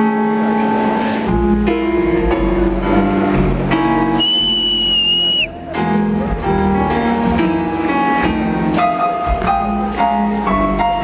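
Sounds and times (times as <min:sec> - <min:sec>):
smooth jazz band with keyboards: 0:00.0 - 0:11.0
high steady whistle: 0:04.2 - 0:05.6.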